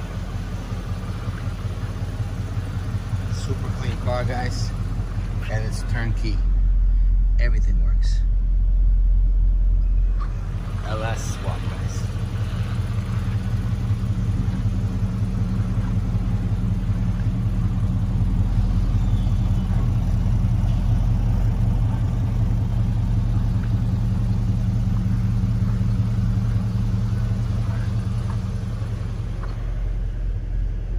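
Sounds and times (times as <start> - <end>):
car engine idling: 0.0 - 30.9.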